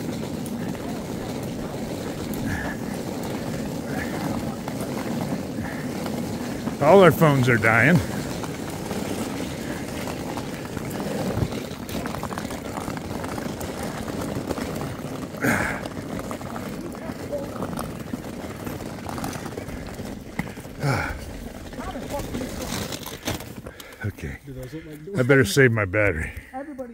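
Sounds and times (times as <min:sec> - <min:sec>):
suitcase rolling over paving: 0:00.0 - 0:25.3
footsteps: 0:00.0 - 0:26.5.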